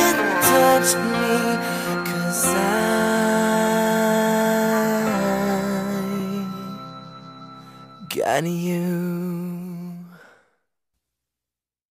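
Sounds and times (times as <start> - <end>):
held note of pop ballad: 0.0 - 9.8.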